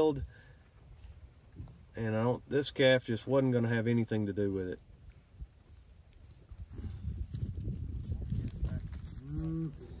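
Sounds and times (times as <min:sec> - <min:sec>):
cow mooing: 0:09.2 - 0:10.0.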